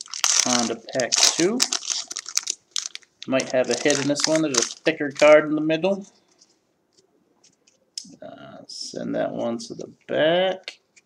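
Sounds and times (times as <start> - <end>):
trading cards shuffling: 0.3 - 5.4.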